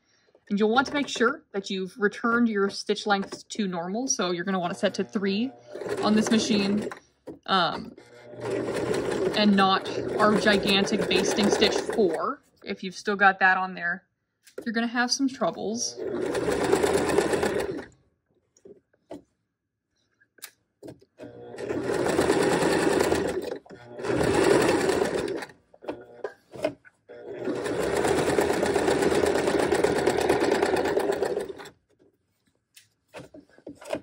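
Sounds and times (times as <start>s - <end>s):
sewing machine stitching: 0.6s - 1.5s, 2.2s - 12.4s, 15.5s - 18.0s, 21.2s - 31.8s.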